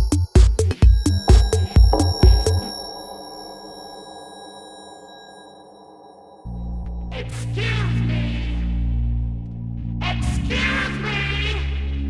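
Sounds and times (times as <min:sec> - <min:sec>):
kick drum beat: 0:00.0 - 0:02.7
held synth tones: 0:00.8 - 0:07.1.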